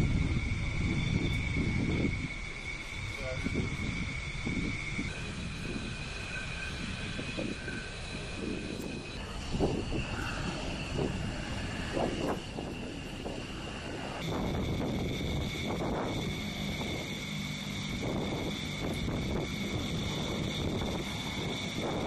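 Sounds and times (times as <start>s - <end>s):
jet engines whining: 0.0s - 22.0s
wind gusts on microphone: 0.0s - 22.0s.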